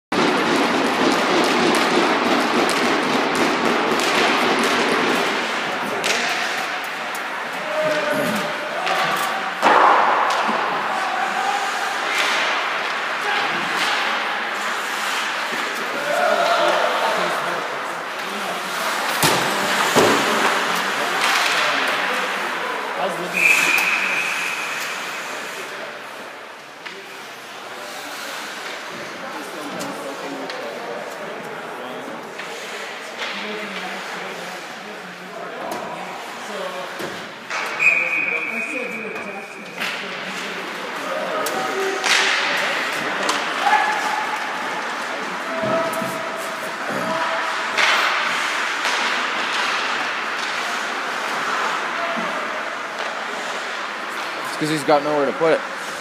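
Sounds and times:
hockey sticks and puck clattering: 0:00.2 - 0:56.0
skates on ice: 0:00.2 - 0:56.0
referee's whistle: 0:23.4 - 0:24.8, 0:37.8 - 0:39.5.

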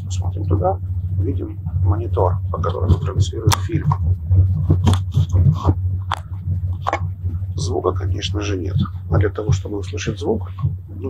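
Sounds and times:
train carriage rumble: 0:00.0 - 0:11.0.

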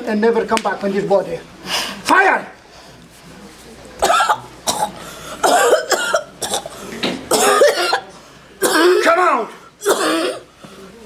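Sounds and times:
woman coughing hard: 0:04.0 - 0:09.2, 0:09.8 - 0:10.5.

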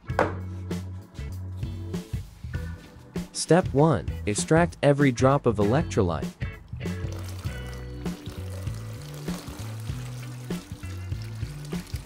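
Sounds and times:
background music: 0:00.0 - 0:12.0
liquid pouring and trickling: 0:06.6 - 0:12.0.

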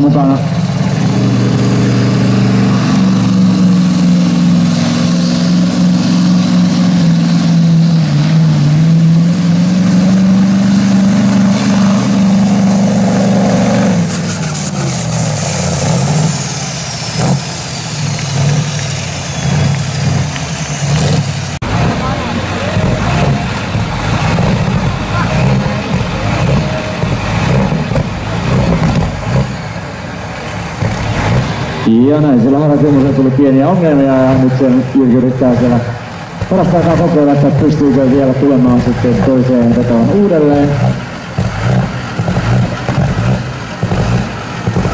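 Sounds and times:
diesel truck engine high revs: 0:00.0 - 0:44.9
falling whine: 0:00.0 - 0:44.9.

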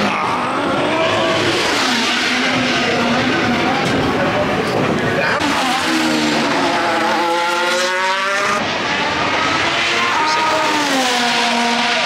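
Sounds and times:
race car engine climbing in pitch: 0:00.0 - 0:12.0
race car passing by: 0:05.5 - 0:12.0.

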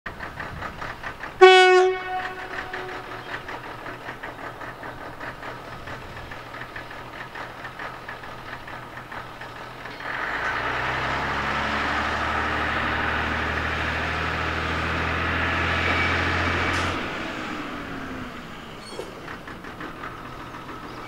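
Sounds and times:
railbus engine running: 0:00.1 - 0:21.0
train horn blast: 0:01.4 - 0:03.4.

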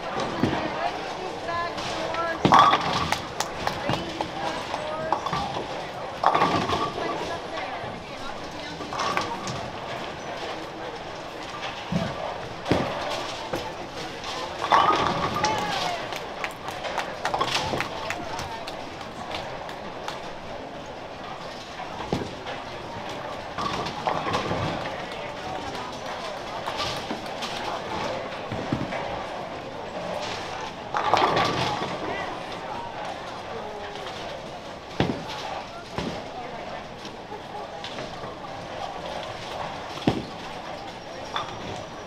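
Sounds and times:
murmur of voices: 0:00.0 - 0:42.0.

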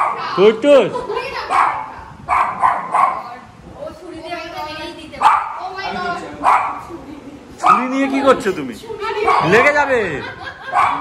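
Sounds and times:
dog barking: 0:00.0 - 0:00.3, 0:01.5 - 0:03.4, 0:05.2 - 0:05.6, 0:06.4 - 0:06.9, 0:07.6 - 0:08.0, 0:09.2 - 0:09.7, 0:10.6 - 0:11.0.

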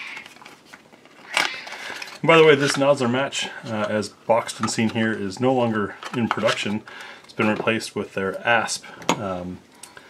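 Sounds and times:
soft handling rustle: 0:00.0 - 0:09.2.

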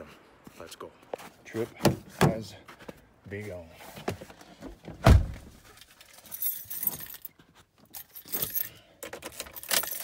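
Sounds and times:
keys jingling: 0:05.7 - 0:10.0.

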